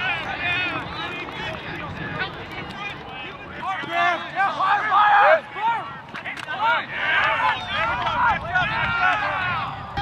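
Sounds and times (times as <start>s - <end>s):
voices shouting over one another: 3.5s - 10.0s.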